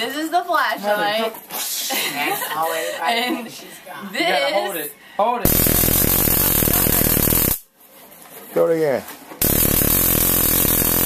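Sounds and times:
stun gun crackling buzz: 5.5 - 7.7, 9.4 - 11.0.

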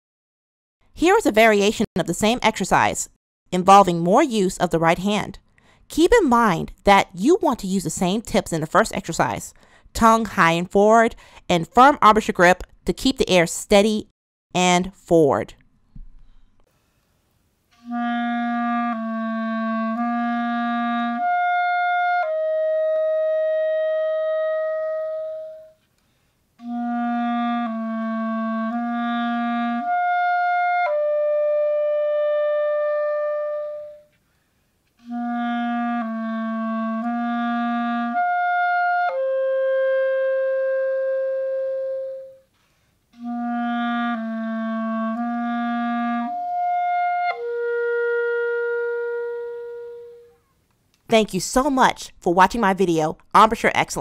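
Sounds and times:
player breathing: 9.6 - 9.9, 42.5 - 43.0
clarinet playing: 17.8 - 25.9, 26.6 - 34.2, 35.0 - 42.5, 43.2 - 50.4.

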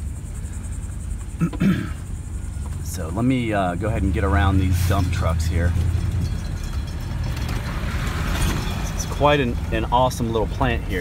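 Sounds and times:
insects buzzing: 0.0 - 9.0
truck engine low rumble: 0.0 - 11.0.

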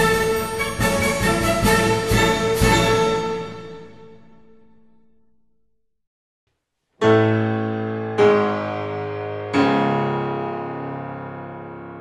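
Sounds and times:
theme music with heavy beat: 0.0 - 4.3.

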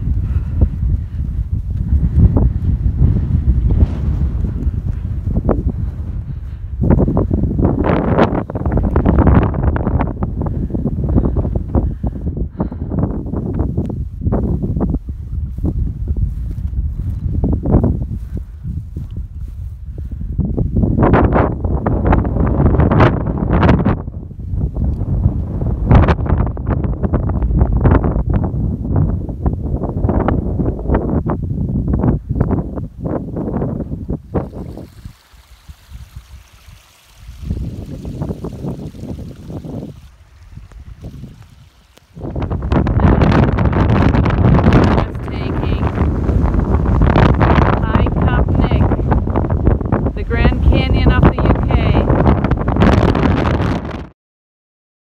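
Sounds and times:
wind buffeting microphone: 0.0 - 54.1.

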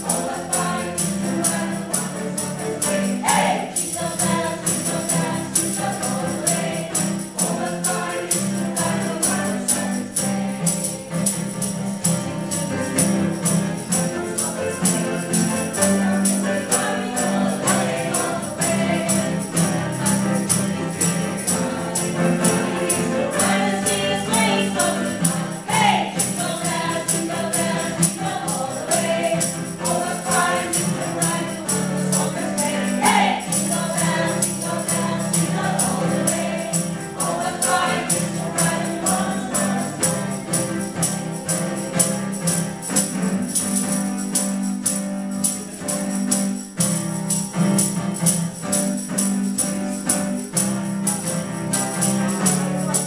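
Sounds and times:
choir singing gospel song: 0.0 - 43.6
tambourine shaken: 0.0 - 53.0.

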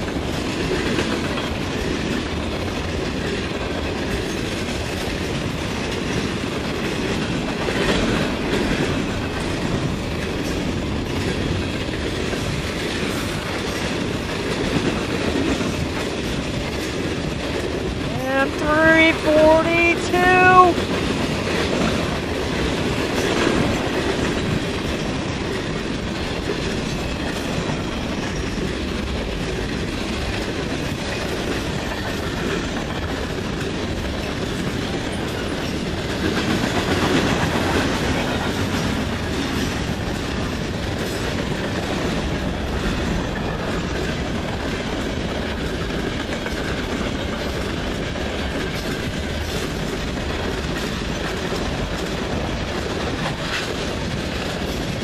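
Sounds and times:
wheels clicking over rail joints: 0.0 - 18.1, 20.8 - 55.0
freight train rumbling past: 0.0 - 55.0.

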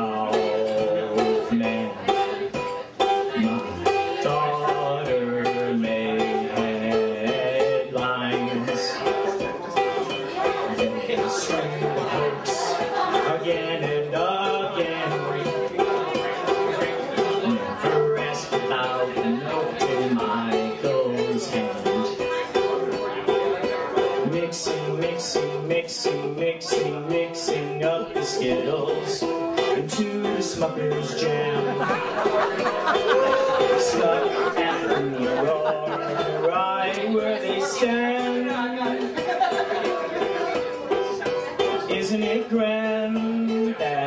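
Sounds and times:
ukulele chords: 0.0 - 44.0.

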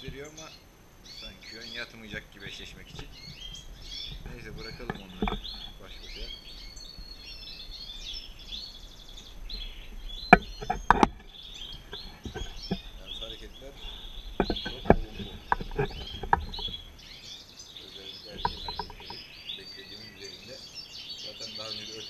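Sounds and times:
goldfinches chirping: 0.0 - 22.0
sharp knocks and clicks: 2.1 - 6.3, 10.2 - 17.0, 18.3 - 19.2.

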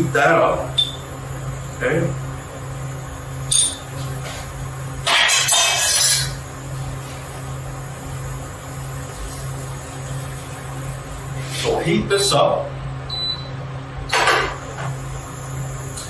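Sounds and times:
kitchen low hum: 0.0 - 16.0.

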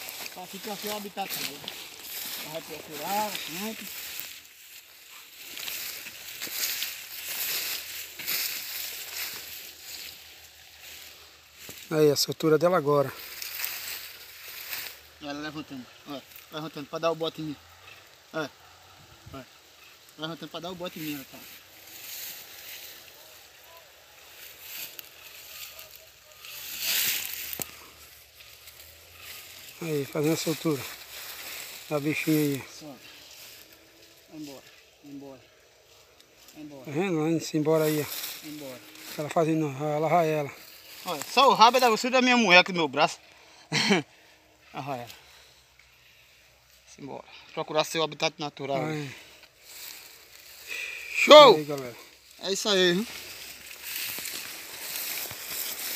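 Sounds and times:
footsteps through dry grass: 0.0 - 55.9
man's voice: 51.1 - 53.2.

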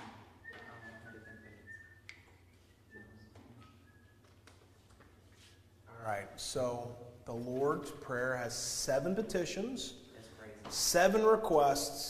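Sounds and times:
person whistling quietly: 0.3 - 4.5.

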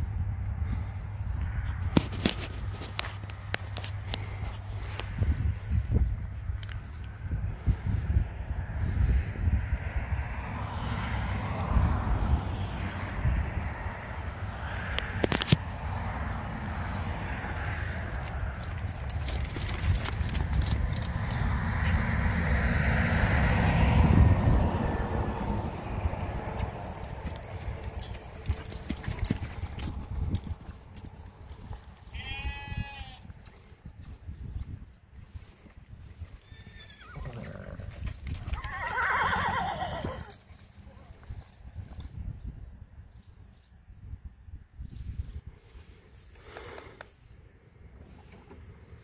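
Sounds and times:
horse hoofbeats in sand: 25.9 - 42.5
horse whinnying: 36.4 - 40.4.

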